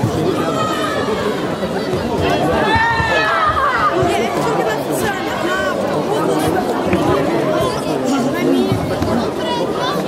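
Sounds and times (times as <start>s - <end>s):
crowd chattering in hall: 0.0s - 10.0s.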